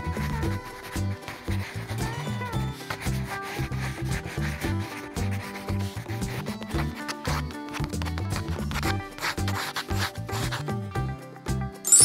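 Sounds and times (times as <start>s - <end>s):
marker rubbing on paper: 0.0s - 10.7s
background music with bass line: 0.0s - 12.0s.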